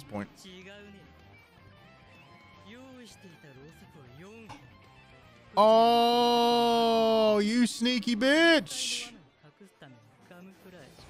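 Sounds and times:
quiet background music: 0.0s - 11.0s
cartoon character speaking: 5.6s - 9.1s.

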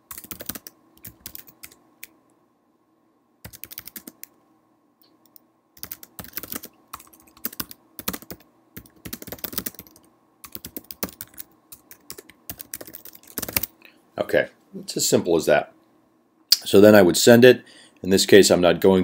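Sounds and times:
computer keyboard typing: 0.1s - 1.8s, 3.4s - 4.3s, 5.2s - 13.7s.

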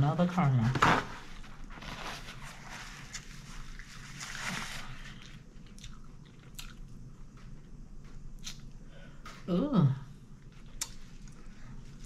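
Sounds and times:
paper towel rustling: 0.5s - 5.3s
chewing and wet mouth smacks: 5.2s - 7.5s, 8.4s - 8.8s, 10.6s - 11.5s.

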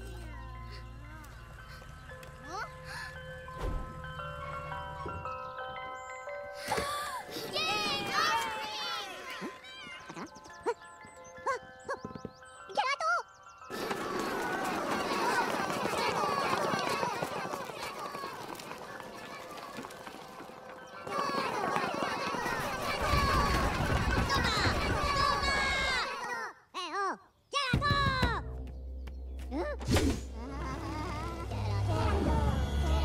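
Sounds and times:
ice cream truck chime jingle: 0.0s - 23.8s
high voices babbling and shouting: 13.7s - 26.5s, 30.3s - 33.0s.

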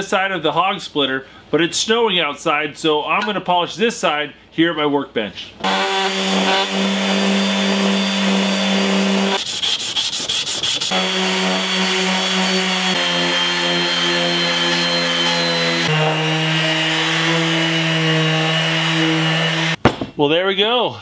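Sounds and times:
orbital sander humming: 5.6s - 19.8s.

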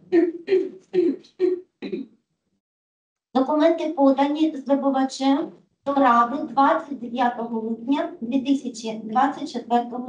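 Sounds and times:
woman speaking over video call: 0.0s - 2.1s, 3.4s - 10.0s.

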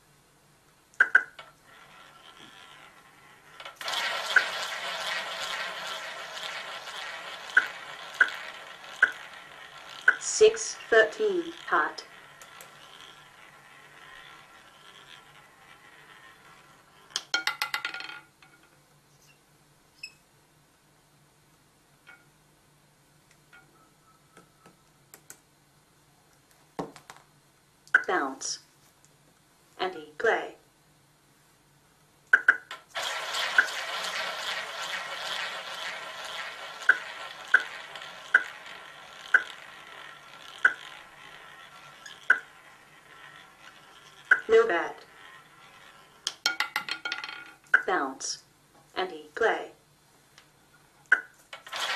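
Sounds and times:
roulette ball whirring: 0.9s - 18.8s, 26.7s - 28.5s, 32.3s - 48.0s, 50.4s - 51.9s
roulette ball clicking on frets: 1.0s - 3.0s, 3.6s - 18.2s, 32.3s - 47.9s, 51.1s - 51.6s.

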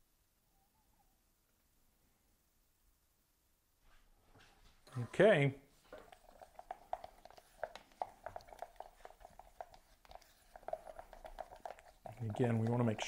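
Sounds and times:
stir stick scraping plastic cup: 4.8s - 13.0s.

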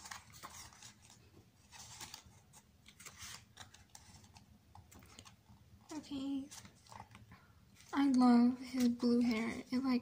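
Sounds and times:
book pages rustling and turning: 0.0s - 10.0s.

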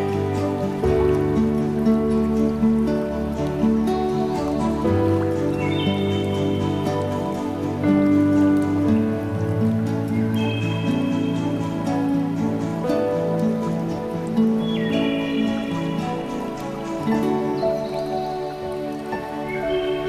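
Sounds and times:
calm new-age instrumental music: 0.0s - 20.0s
rain pattering: 0.0s - 20.0s.

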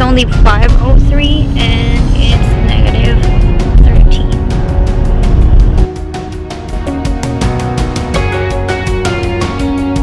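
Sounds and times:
low rumble of car: 0.0s - 9.0s
rock music on car radio: 0.0s - 10.0s.

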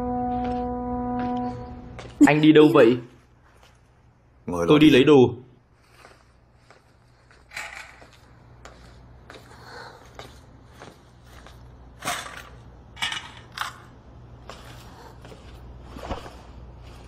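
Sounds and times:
low steady hum: 0.0s - 17.0s
instruments clicking and rustling: 7.2s - 8.4s.

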